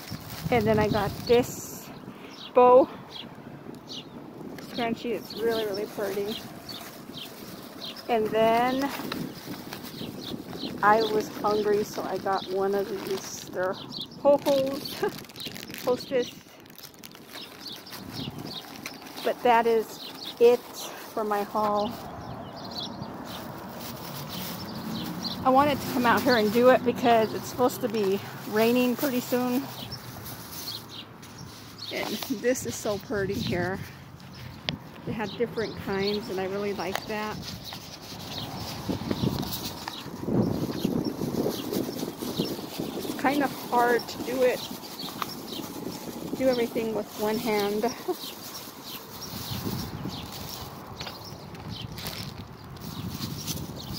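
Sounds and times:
small bird chirping: 0.0 - 33.6, 34.2 - 53.9
wind on microphone: 0.0 - 53.9
shopping items rustling and knocking: 21.6 - 21.9, 35.6 - 40.1.

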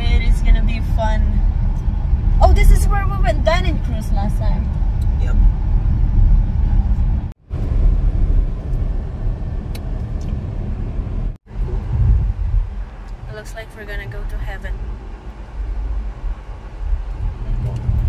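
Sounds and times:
road and engine rumble: 0.0 - 18.0.

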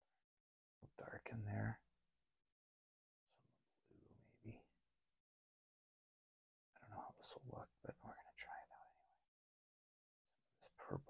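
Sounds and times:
man whispering: 0.9 - 1.8, 3.9 - 4.7, 6.8 - 9.2, 10.6 - 11.0.

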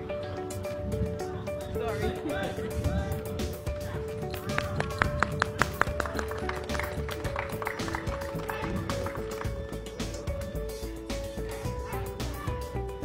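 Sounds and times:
music with held notes: 0.0 - 13.0.

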